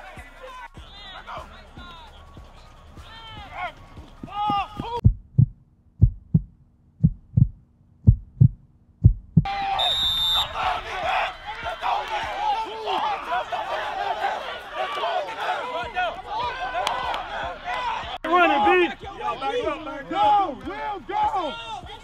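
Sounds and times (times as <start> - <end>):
heartbeat lub-dub thumps: 4.2 - 9.5.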